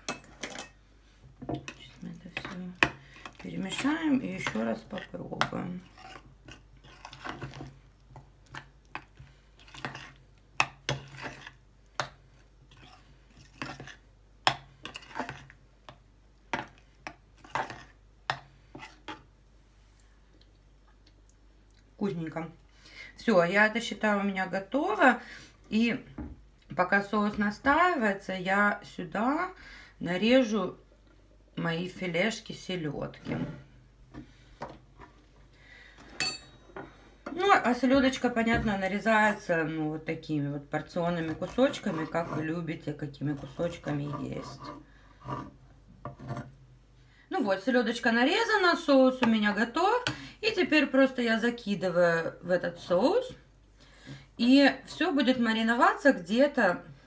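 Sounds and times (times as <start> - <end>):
spoon stirring thick sauce: 1.5 - 19.4, 40.6 - 46.6
metal spoon clinking against bowl: 36.2 - 36.7.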